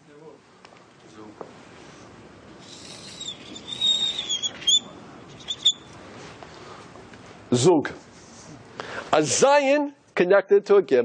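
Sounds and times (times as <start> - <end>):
marker squeaking on a board: 2.6 - 5.9.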